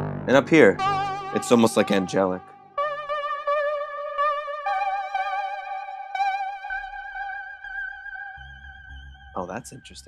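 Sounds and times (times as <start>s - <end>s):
synthesizer high sustained notes: 0.0s - 9.9s.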